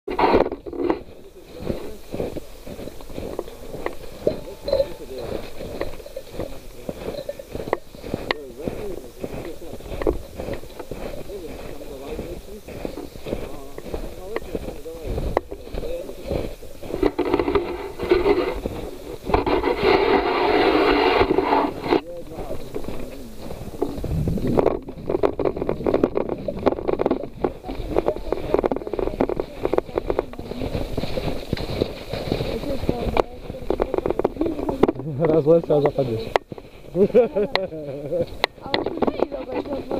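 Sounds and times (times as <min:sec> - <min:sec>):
footsteps in snow: 0:00.1 - 0:39.9
people's voices: 0:00.1 - 0:39.9
backpack rubbing and knocking: 0:17.0 - 0:22.4, 0:23.8 - 0:37.2.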